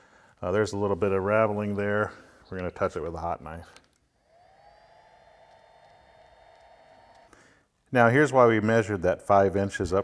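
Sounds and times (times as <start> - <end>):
electric hot knife whine: 4.2 - 7.4.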